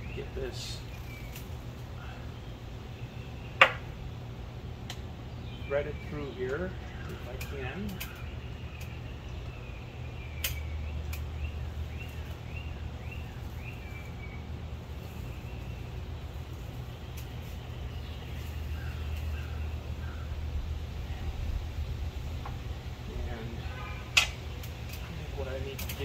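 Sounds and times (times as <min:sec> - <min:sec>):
low outdoor hum: 0:00.0 - 0:26.0
sharp clicks: 0:04.8 - 0:05.1, 0:10.4 - 0:11.3.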